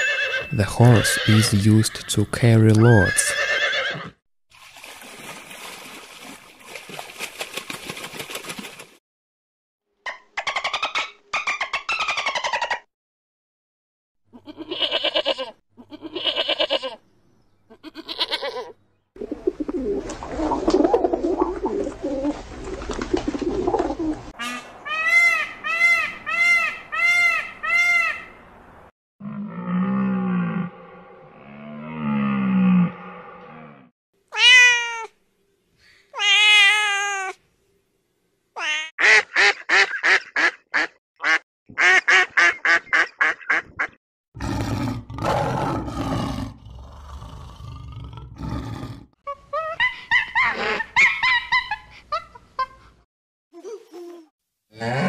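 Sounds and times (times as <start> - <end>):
pigeons cooing: 19.2 - 24.3
cat meowing: 34.3 - 35.1, 36.2 - 37.4.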